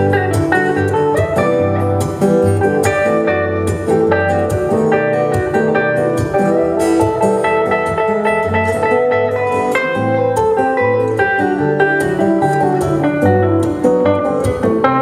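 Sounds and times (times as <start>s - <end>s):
acoustic guitar: 0.0s - 15.0s
electric guitar: 0.0s - 15.0s.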